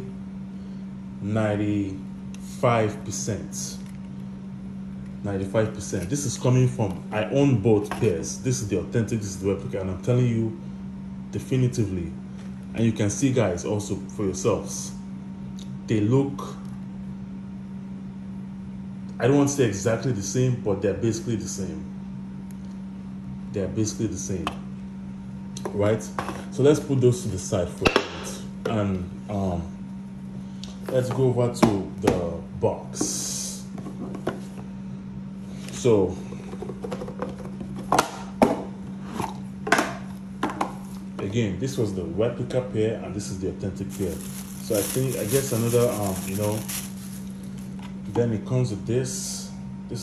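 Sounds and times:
steady low hum: 0.0 - 50.0
cardboard boxes tapping and knocking: 36.5 - 38.6.

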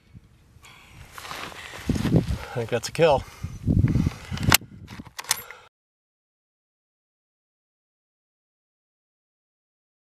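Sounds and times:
rifle bolt clicking: 5.2 - 5.6.

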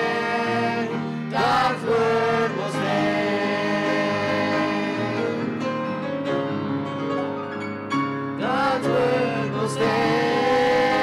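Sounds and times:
adults and children singing gospel: 0.0 - 5.5, 8.4 - 11.0.

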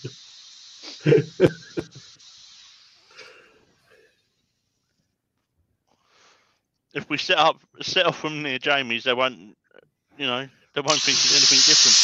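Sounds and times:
sanding disc hissing on wood: 0.0 - 3.1, 10.9 - 12.0
man laughing loudly: 0.9 - 2.1.

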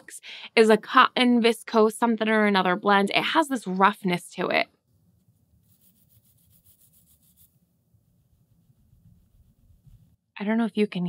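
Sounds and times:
fingers rubbing yarn: 4.9 - 10.2.

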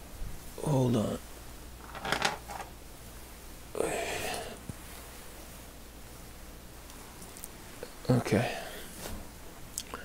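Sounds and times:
metal parts clinking: 1.8 - 2.7.

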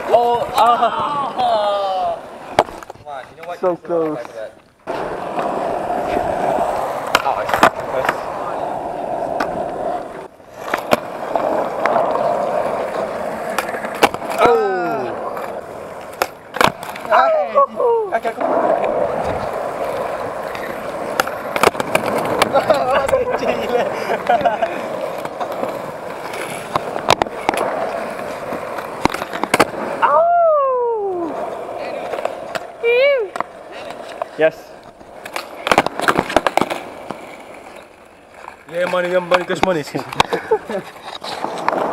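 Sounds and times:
skateboard wheels rolling on concrete: 0.0 - 41.9
skateboard clacking on landing: 2.5 - 8.4, 9.2 - 17.2, 18.2 - 30.0, 35.0 - 37.3, 38.6 - 40.8.

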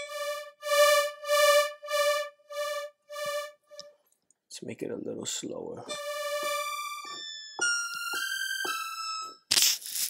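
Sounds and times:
bell-like synthesizer notes: 0.0 - 3.9, 5.8 - 9.3.

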